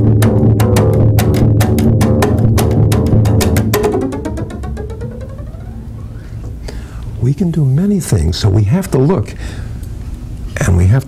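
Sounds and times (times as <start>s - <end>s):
double bass percussive strokes: 0.0s - 6.7s
ringing bass tone: 3.4s - 6.4s.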